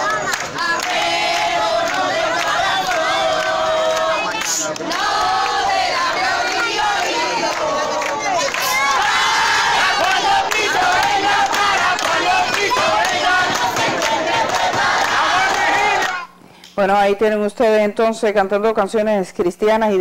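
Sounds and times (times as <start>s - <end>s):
crowd singing a hymn: 0.0s - 16.3s.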